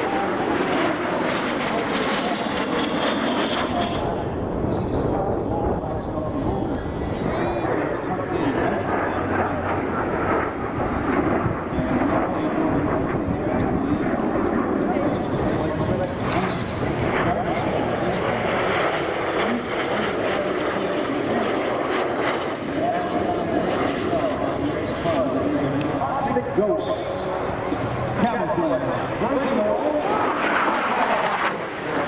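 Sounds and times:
jet engines roaring: 0.0s - 32.0s
voices: 0.0s - 32.0s.

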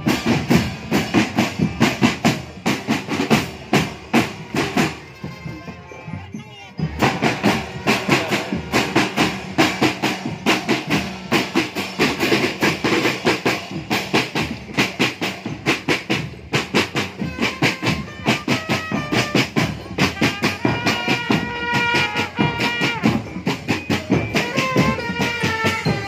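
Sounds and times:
snare drums playing fast rhythm: 0.0s - 5.8s, 6.8s - 26.0s
trumpets holding notes: 4.2s - 10.2s, 17.0s - 23.6s, 24.3s - 26.0s.

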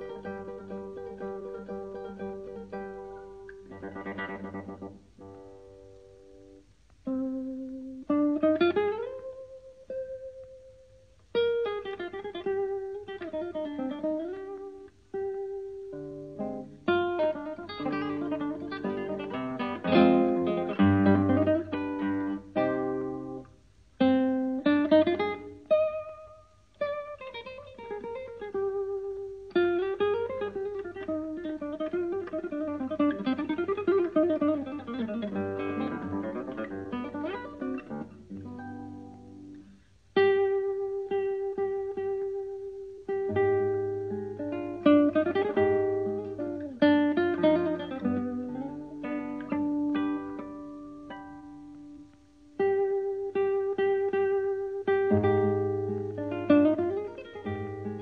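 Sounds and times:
acoustic guitar plucked and strummed: 0.0s - 10.5s, 11.2s - 58.0s.

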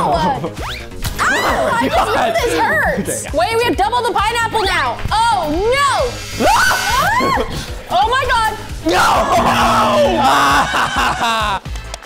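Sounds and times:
background music: 0.0s - 12.0s
person shouting excitedly: 1.2s - 3.0s, 8.8s - 10.7s.

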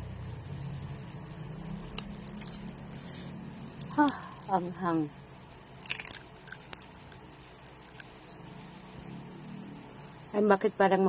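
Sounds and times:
crunchy food being chewed: 0.4s - 4.8s, 5.4s - 10.0s.

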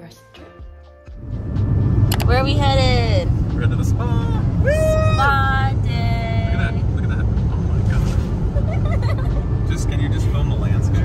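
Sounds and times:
car road and engine rumble: 1.1s - 11.0s.

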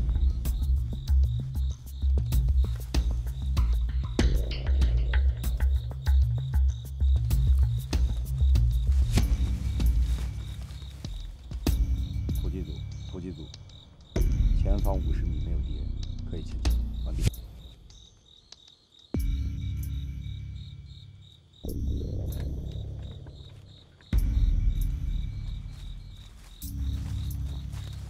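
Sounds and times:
crickets chirping: 0.0s - 28.0s
low suspense music swells: 11.6s - 17.8s, 19.2s - 23.5s, 24.2s - 28.0s.

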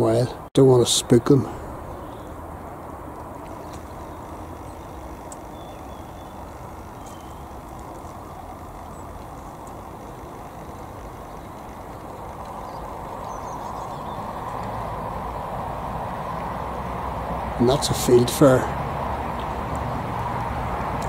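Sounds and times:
distant road traffic rumble: 0.0s - 21.0s.

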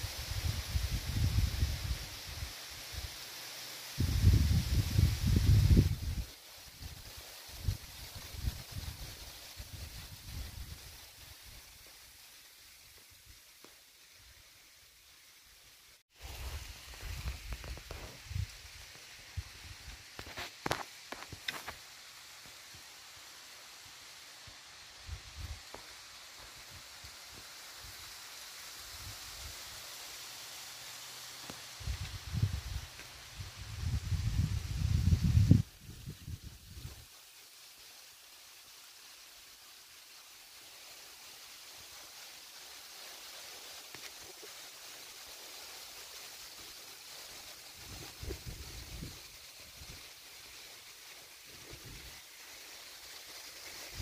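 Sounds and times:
rustling on camera microphone: 4.0s - 12.1s, 16.1s - 22.7s, 43.0s - 54.0s.

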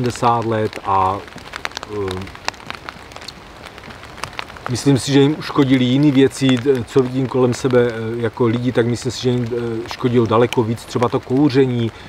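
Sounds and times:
light ticks and taps: 9.9s - 11.2s.

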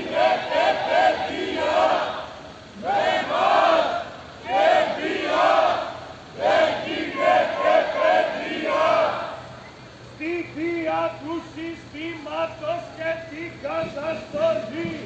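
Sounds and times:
crowd chanting in unison: 0.0s - 9.6s.

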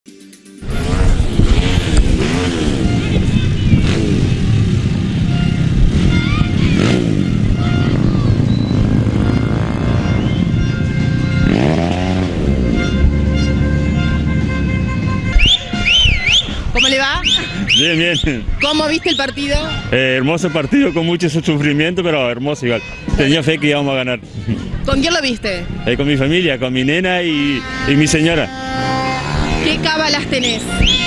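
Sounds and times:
music: 0.0s - 2.2s, 15.0s - 18.2s, 18.8s - 27.6s
car engines passing: 0.6s - 31.0s
motorcycle engines revving: 0.6s - 31.0s.

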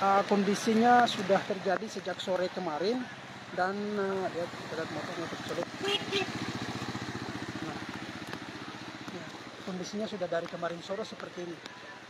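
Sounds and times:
motorcycle riding through water: 3.1s - 10.2s
motorcycle engine running: 3.6s - 9.9s.

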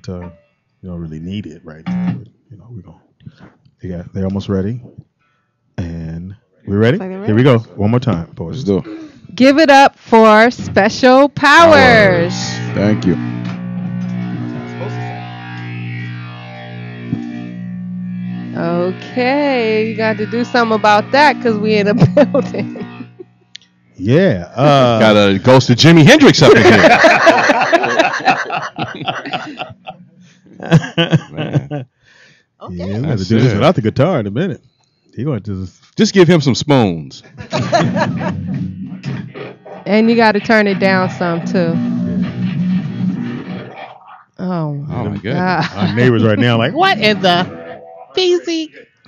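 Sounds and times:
distorted electric guitar drone: 0.0s - 0.5s, 1.8s - 2.3s, 10.2s - 31.8s, 32.6s - 33.9s, 37.4s - 44.0s, 44.9s - 48.8s
people laughing: 11.6s - 13.0s, 21.8s - 23.2s, 24.1s - 31.8s, 32.7s - 34.5s, 37.2s - 38.6s, 45.0s - 47.6s, 48.2s - 48.9s.

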